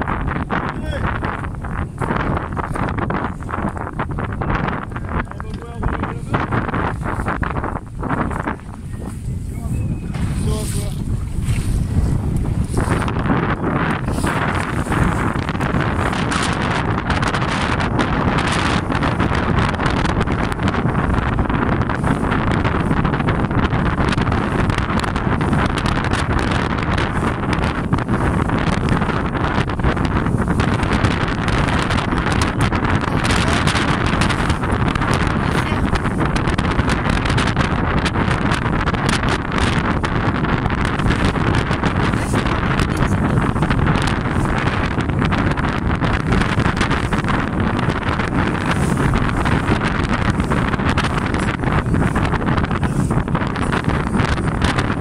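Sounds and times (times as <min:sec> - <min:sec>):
choppy sea water rushing: 0:00.0 - 0:55.0
wind buffeting microphone: 0:00.0 - 0:55.0.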